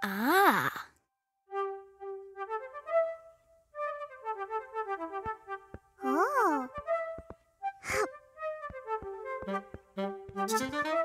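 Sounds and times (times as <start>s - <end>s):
pan flute melody: 1.5s - 11.0s.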